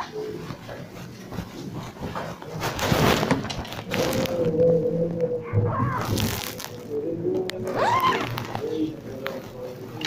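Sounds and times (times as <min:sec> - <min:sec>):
man chanting: 0:03.9 - 0:10.0.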